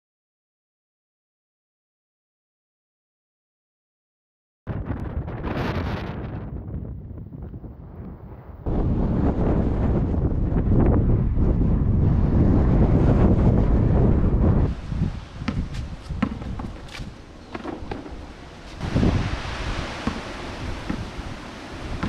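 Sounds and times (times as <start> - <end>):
wind buffeting microphone: 4.7 - 22.0
basketball bouncing on asphalt: 15.4 - 18.2, 20.0 - 21.2.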